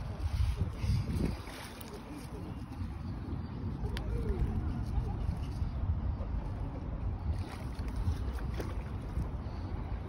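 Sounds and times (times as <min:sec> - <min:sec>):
wind rumbling on microphone: 0:00.0 - 0:10.0.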